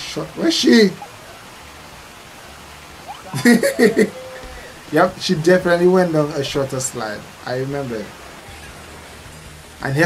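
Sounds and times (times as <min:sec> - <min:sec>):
steady rushing noise: 0:00.0 - 0:10.0
person calling out: 0:03.1 - 0:05.1.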